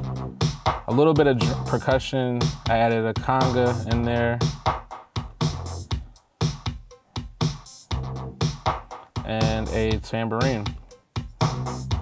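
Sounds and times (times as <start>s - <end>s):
hip-hop beat: 0.0s - 12.0s.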